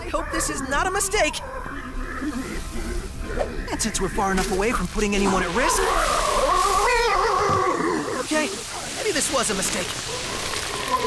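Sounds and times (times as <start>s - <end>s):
monstrous creature howling: 5.2s - 8.3s, 10.1s - 11.0s.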